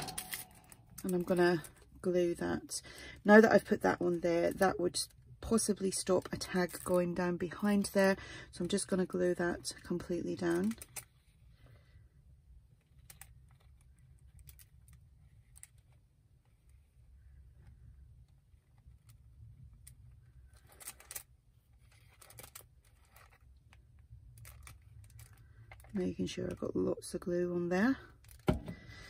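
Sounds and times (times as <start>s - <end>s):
low steady hum: 0.0s - 29.0s.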